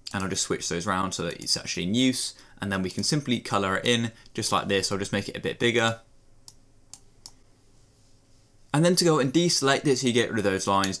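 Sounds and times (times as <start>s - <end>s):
faint computer mouse clicks: 5.9s - 7.4s.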